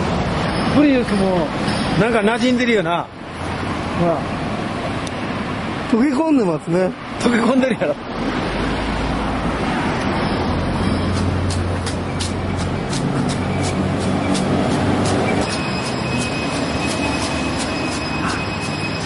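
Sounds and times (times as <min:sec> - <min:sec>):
street traffic: 0:00.0 - 0:19.0
vehicle engine hum: 0:07.1 - 0:19.0.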